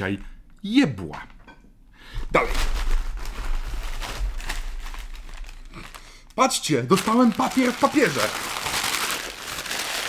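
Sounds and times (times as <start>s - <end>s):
tissue paper rustling: 2.4s - 6.0s, 6.8s - 10.0s.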